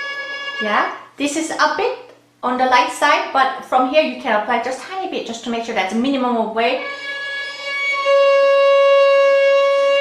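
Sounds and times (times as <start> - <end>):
violin long bowed note: 0.0 - 1.0, 6.7 - 10.0.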